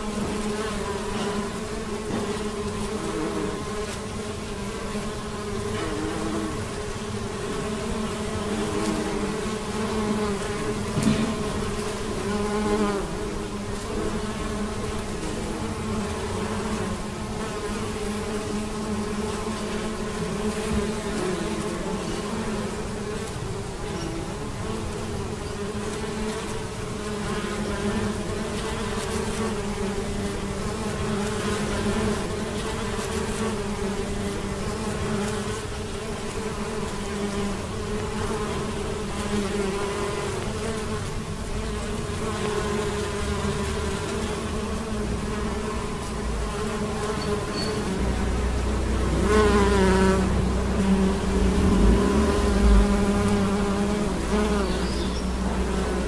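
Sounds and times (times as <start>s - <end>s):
bees buzzing: 0.0s - 56.0s.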